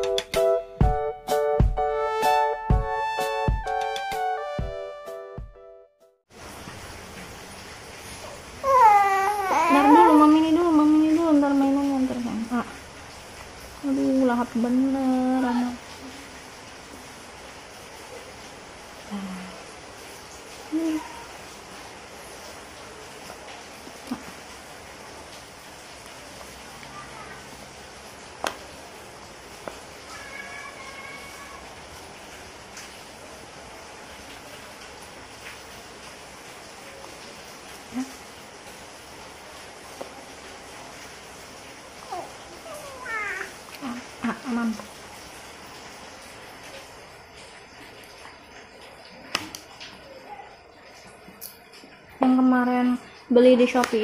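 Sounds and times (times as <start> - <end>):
infant babbling and cooing: 8.6 - 10.6, 42.0 - 43.6.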